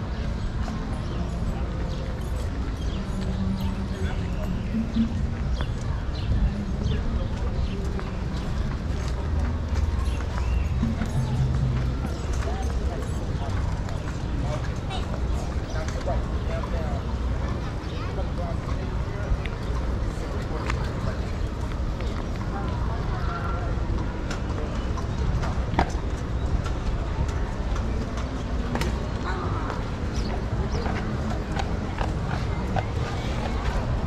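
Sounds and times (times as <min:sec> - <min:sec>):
voices of passers-by: 0:00.0 - 0:34.0.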